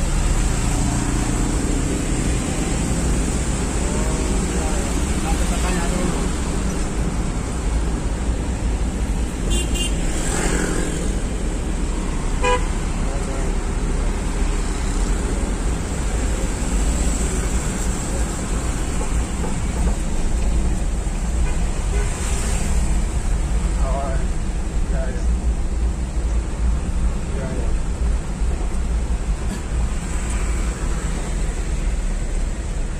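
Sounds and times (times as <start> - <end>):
traffic rumble and road noise: 0.0 - 32.9.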